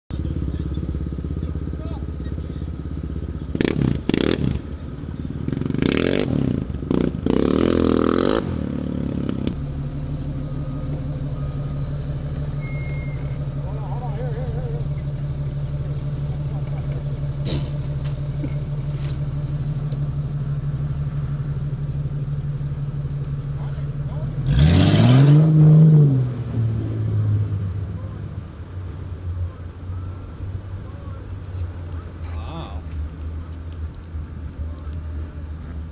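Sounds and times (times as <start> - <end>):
engine revving: 0.1 - 32.2
off-road vehicle engine idling: 0.1 - 35.9.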